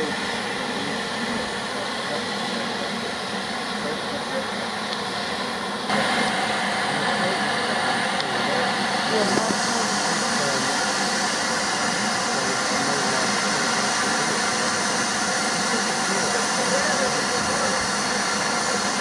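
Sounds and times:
steam locomotive hissing: 0.0s - 19.0s.

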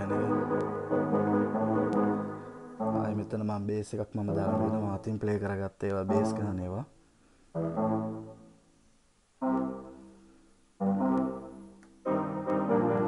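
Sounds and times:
keyboard playing bass line: 0.0s - 5.2s, 6.0s - 6.8s, 7.6s - 8.5s, 9.4s - 10.2s, 10.8s - 13.0s.

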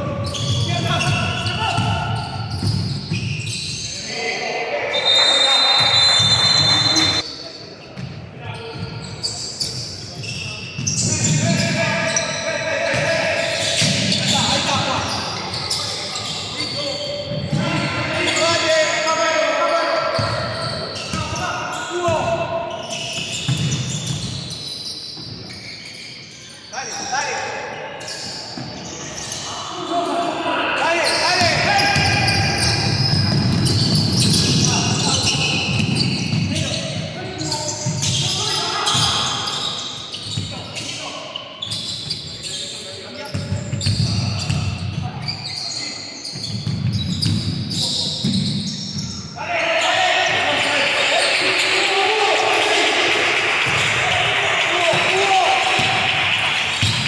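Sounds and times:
players' voices: 0.0s - 24.4s, 26.3s - 57.0s.

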